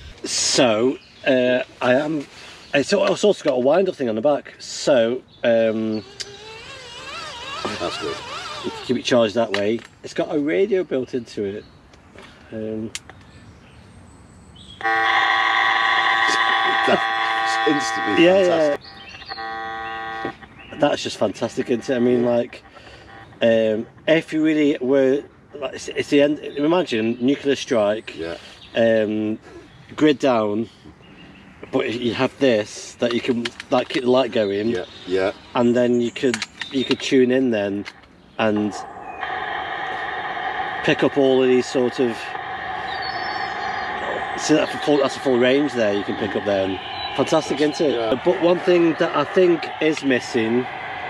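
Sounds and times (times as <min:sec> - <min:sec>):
loud horn-like electronic tone: 0:14.8 - 0:20.4, 0:21.5 - 0:23.8, 0:38.8 - 0:51.0
radio static hiss: 0:15.9 - 0:29.1, 0:36.8 - 0:51.0.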